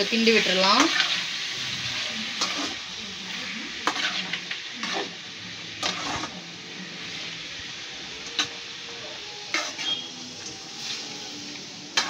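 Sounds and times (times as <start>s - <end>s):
vegetables sizzling in a metal pan: 0.0s - 12.0s
metal spatula scraping a pan: 0.2s - 6.4s, 9.5s - 12.0s.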